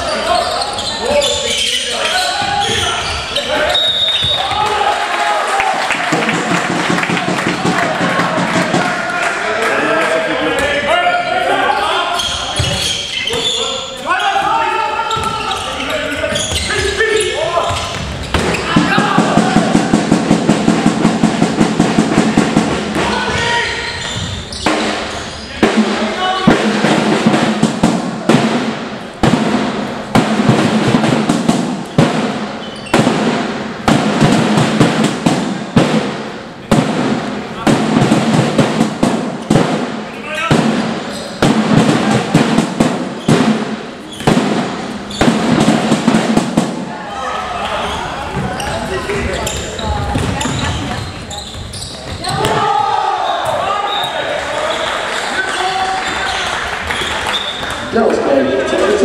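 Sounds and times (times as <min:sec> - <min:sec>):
sharp knocks: 0:24.6 - 0:46.8
ball bouncing and slapping: 0:49.4 - 0:51.0.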